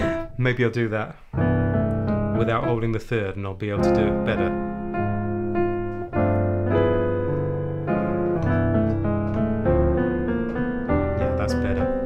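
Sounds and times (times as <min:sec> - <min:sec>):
piano playing jazz chords: 0:00.0 - 0:12.0.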